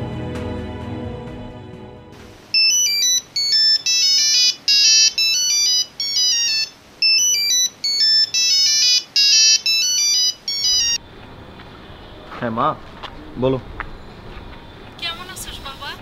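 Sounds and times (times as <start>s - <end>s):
mobile phone ringtone: 2.5s - 11.0s.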